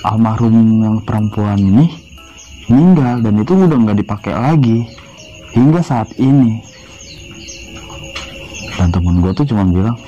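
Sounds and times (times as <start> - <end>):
man's voice: 0.0 - 6.7, 8.7 - 10.0
crickets trilling: 0.0 - 10.0.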